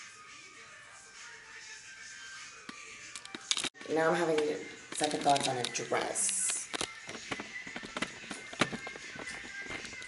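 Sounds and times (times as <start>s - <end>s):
faint background music: 0.0s - 10.0s
camera handling clicks and rubbing: 3.2s - 3.8s.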